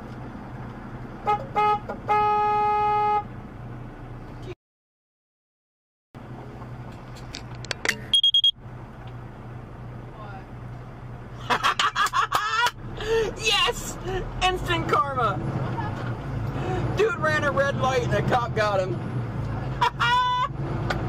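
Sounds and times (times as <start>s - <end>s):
short high electronic beep: 8.1s - 8.6s
voices talking and laughing: 11.4s - 16.2s.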